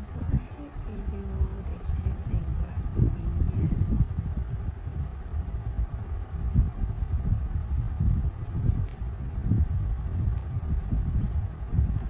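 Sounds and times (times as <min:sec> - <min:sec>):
crayon rubbing on paper: 0:00.0 - 0:09.8.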